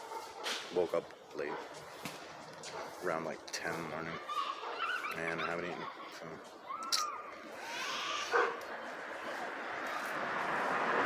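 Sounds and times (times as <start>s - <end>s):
dog barking: 0.0s - 0.6s, 1.4s - 1.8s, 2.7s - 3.1s, 4.2s - 6.1s, 8.3s - 8.6s
street noise hiss: 0.0s - 11.0s.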